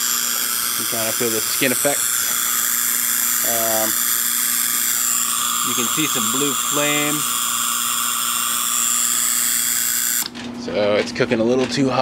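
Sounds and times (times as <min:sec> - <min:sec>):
spark gap buzzing hiss: 0:00.0 - 0:10.3.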